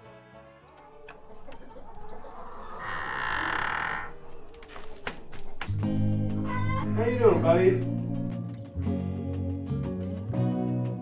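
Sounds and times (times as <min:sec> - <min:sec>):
rooster crowing: 0:00.9 - 0:08.3
background music with bass: 0:05.6 - 0:11.0.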